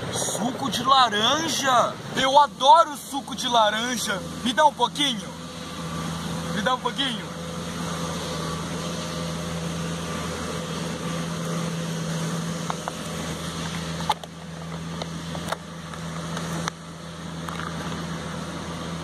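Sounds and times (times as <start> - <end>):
low motor hum: 0.0 - 19.0.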